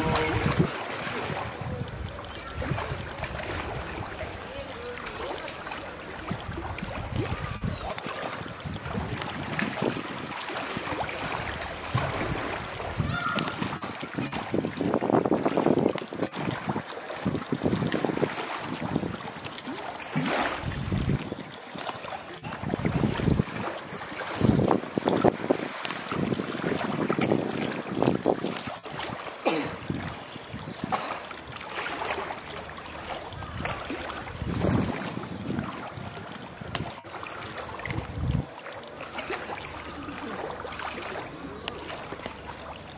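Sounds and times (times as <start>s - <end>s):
water splashing and sloshing: 0.0s - 42.9s.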